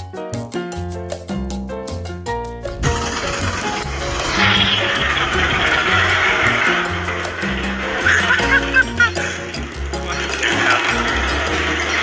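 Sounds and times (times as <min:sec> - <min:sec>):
music with rhythmic bass line: 0:00.0 - 0:12.0
loud rushing noise: 0:02.7 - 0:08.5.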